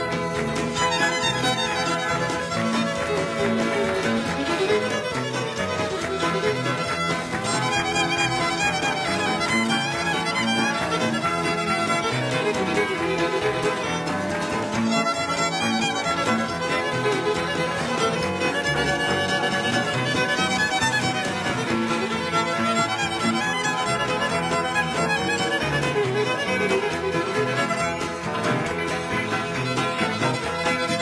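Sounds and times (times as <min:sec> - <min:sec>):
country band playing: 0:00.0 - 0:31.0
fiddle playing tune: 0:00.0 - 0:31.0.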